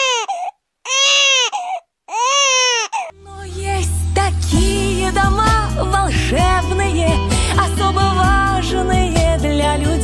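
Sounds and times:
newborn baby crying: 0.0 - 3.2
heavy bass music: 3.2 - 10.0.

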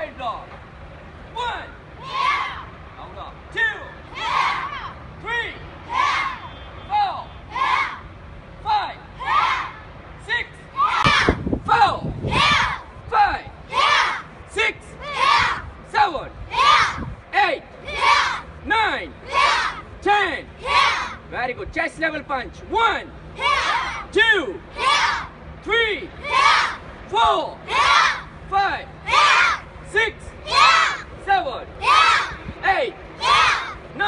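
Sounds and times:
instructor calling command: 1.3 - 8.0, 8.6 - 12.2, 13.1 - 34.0
children shouting in unison: 2.0 - 2.7, 4.1 - 5.0, 5.8 - 6.5, 7.5 - 8.0, 9.2 - 9.9, 10.8 - 11.4, 12.2 - 12.9, 13.7 - 14.3, 15.0 - 15.6, 16.5 - 17.1, 17.9 - 18.5, 19.2 - 19.8, 20.6 - 21.2, 23.4 - 24.1, 24.8 - 25.4, 26.2 - 26.8, 27.7 - 28.3, 29.0 - 29.7, 30.4 - 31.1, 31.8 - 32.4, 33.2 - 33.9.

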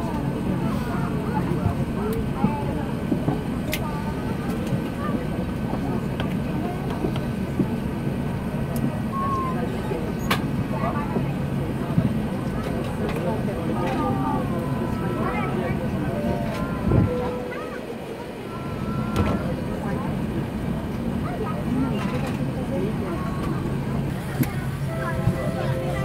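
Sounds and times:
aircraft cabin rumble: 0.0 - 26.0
passengers talking faintly: 0.0 - 26.0.

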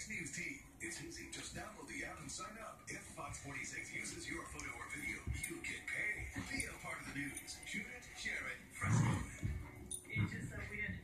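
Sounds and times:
television voice talking: 0.0 - 11.0.

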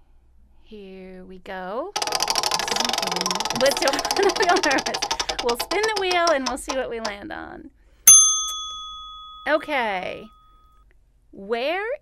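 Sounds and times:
prize wheel ticker clicking: 2.0 - 7.2.

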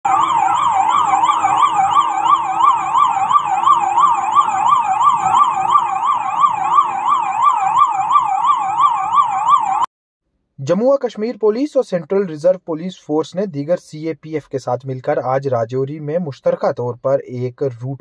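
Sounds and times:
police siren yelping: 0.0 - 9.9.

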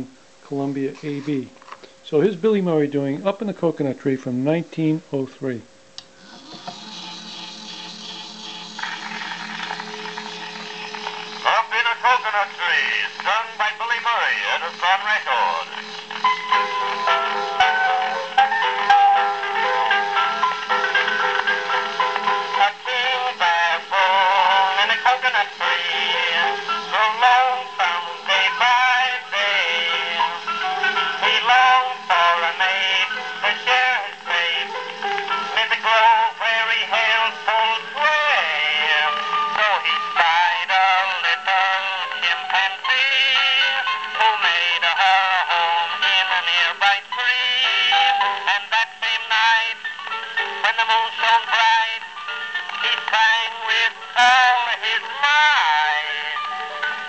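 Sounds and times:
tenor singing on old cylinder record: 6.2 - 57.0.

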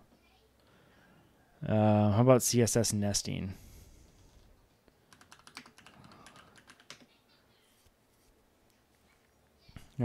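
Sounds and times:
computer keyboard typing: 5.1 - 7.1.

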